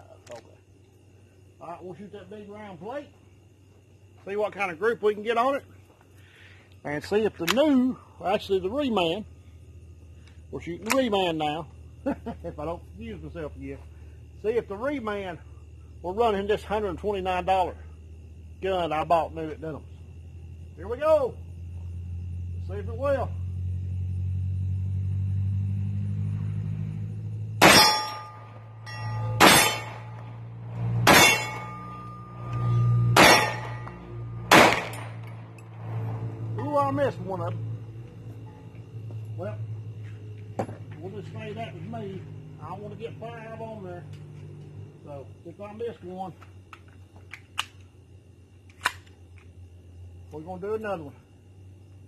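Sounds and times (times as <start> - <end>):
pistol shots: 27.6 - 28.4, 29.2 - 30.2, 31.0 - 31.9, 33.1 - 35.5
steel plate ringing: 27.6 - 30.5, 31.1 - 35.3
pistol mechanical clicks: 46.7 - 47.9, 48.7 - 49.5.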